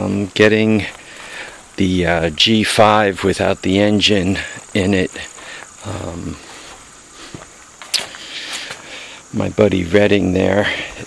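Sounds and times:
crickets buzzing: 0:00.0 - 0:11.0.

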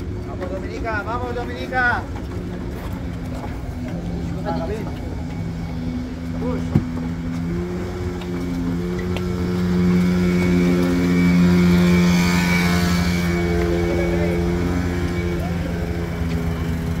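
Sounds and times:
engines droning: 0:00.0 - 0:17.0.

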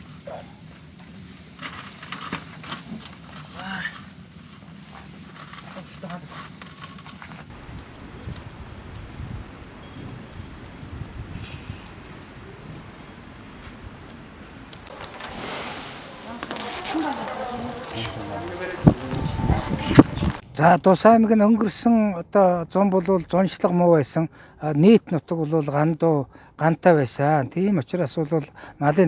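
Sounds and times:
animals rustling hay: 0:00.0 - 0:10.6, 0:14.2 - 0:20.4
goat bleat: 0:16.4 - 0:20.4.

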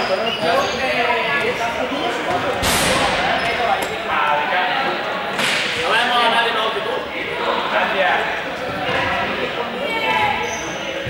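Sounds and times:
young people's voices and shouts: 0:00.0 - 0:11.0.

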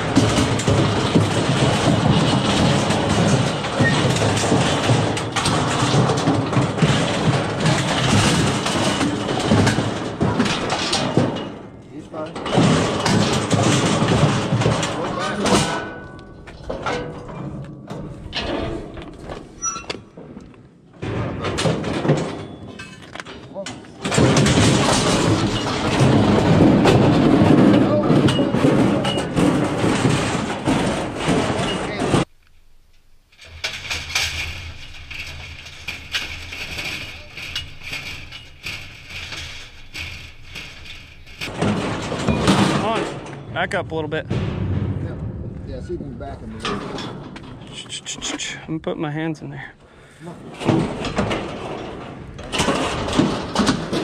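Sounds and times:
metal chute rattling and clanging: 0:00.0 - 0:32.3, 0:33.3 - 0:54.0
metal knocks and clanks: 0:00.0 - 0:32.3, 0:33.3 - 0:54.0.

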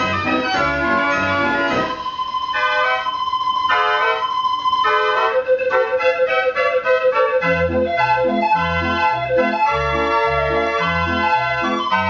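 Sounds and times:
street organ playing a tune: 0:00.0 - 0:12.0.

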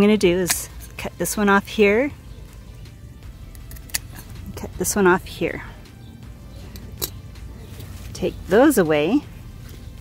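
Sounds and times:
low steady background: 0:00.0 - 0:10.0
pruners clicking shut: 0:03.5 - 0:04.6.

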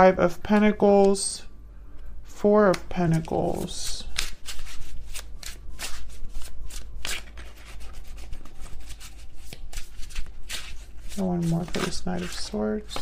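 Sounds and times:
cards being shuffled: 0:02.6 - 0:13.0.

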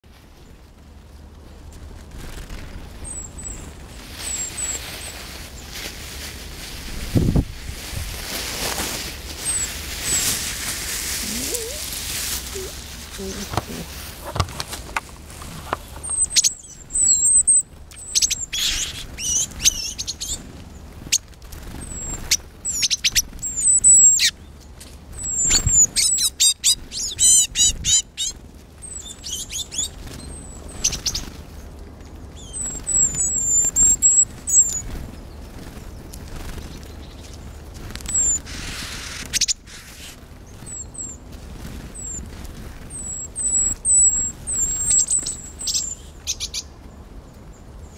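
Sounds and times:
rustling hiss: 0:00.1 - 0:23.6, 0:28.0 - 0:46.6
tits calling: 0:02.6 - 0:05.7, 0:15.6 - 0:31.6, 0:32.3 - 0:41.2, 0:41.8 - 0:46.8
bird high thin calls: 0:16.0 - 0:20.4, 0:43.0 - 0:46.7.

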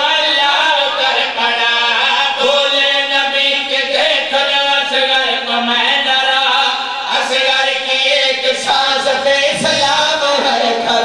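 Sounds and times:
men chanting through microphones: 0:00.0 - 0:11.0.

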